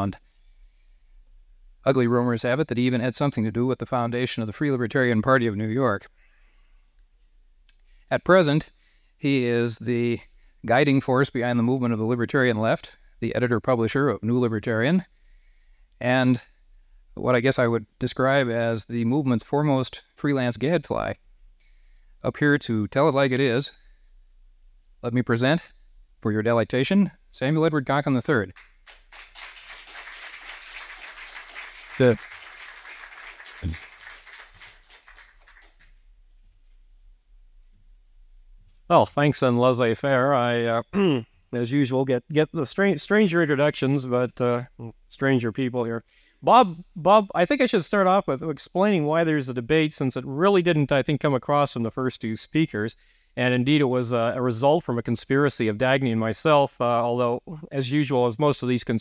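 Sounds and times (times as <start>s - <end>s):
audience applauding: 28.6s - 35.9s
man's short grunt: 41.0s - 41.3s.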